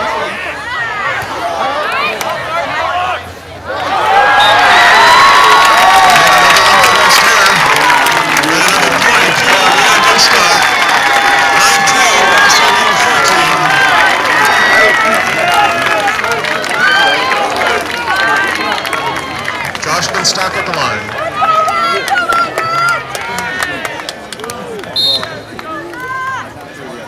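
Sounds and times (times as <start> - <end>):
crowd talking and shouting: 0.0 - 27.0.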